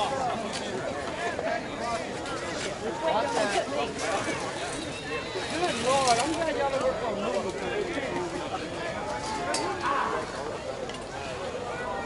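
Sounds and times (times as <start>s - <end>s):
indistinct voices talking: 0.0s - 12.0s.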